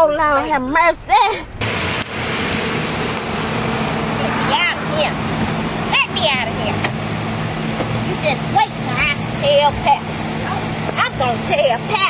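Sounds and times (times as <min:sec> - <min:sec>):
road noise: 0:00.0 - 0:12.0
car engine: 0:00.2 - 0:12.0.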